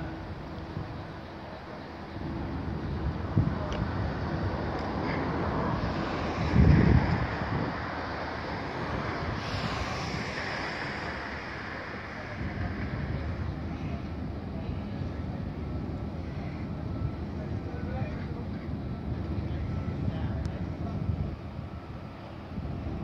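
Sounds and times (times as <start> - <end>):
wind buffeting microphone: 2.2 - 23.0.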